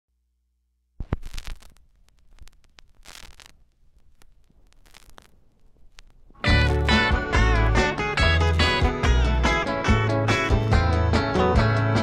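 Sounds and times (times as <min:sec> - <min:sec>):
vinyl crackle and pops: 0:00.9 - 0:10.8
stylus click on vinyl: 0:01.0 - 0:07.2
music from record: 0:01.0 - 0:12.0.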